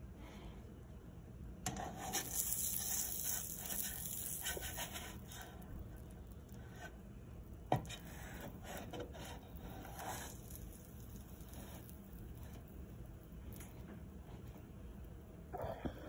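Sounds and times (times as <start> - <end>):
margarine frying: 1.7 - 15.1.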